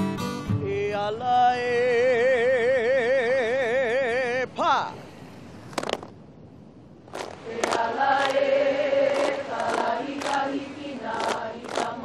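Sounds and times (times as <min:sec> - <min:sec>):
women chanting in unison: 0:07.4 - 0:12.0.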